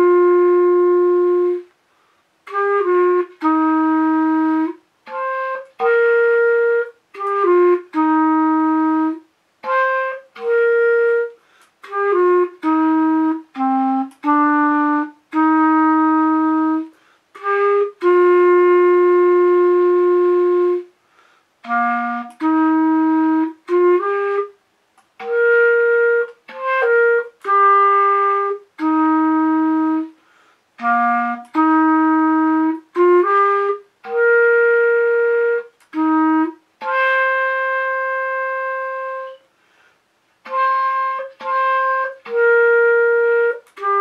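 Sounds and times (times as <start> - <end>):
clarinet long note: 0.0 - 1.7, 2.4 - 24.6, 25.2 - 30.2, 30.8 - 39.5, 40.4 - 44.0.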